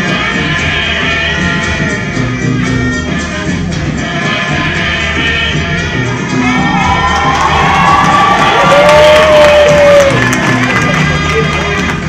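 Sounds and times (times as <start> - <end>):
recorded dance music: 0.0 - 12.0
audience cheering and shouting: 6.0 - 12.0.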